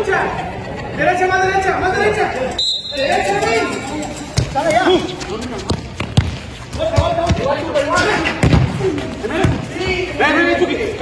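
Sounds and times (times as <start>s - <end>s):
football thuds on concrete: 5.2s - 9.7s.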